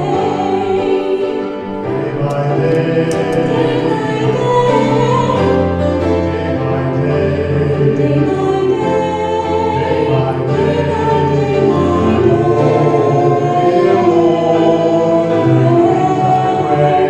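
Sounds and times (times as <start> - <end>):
low musical accompaniment: 0.0 - 17.0
man and woman singing duet: 0.0 - 17.0.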